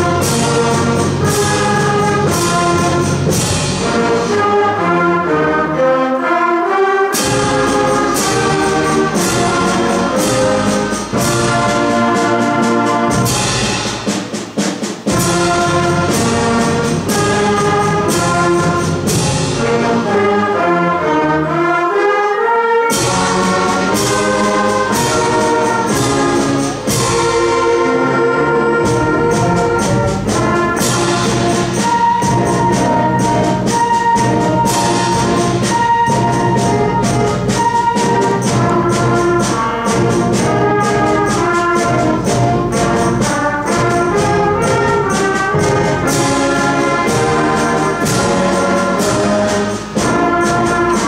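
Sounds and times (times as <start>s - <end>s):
concert band playing chords: 0.0s - 21.7s, 22.9s - 51.0s.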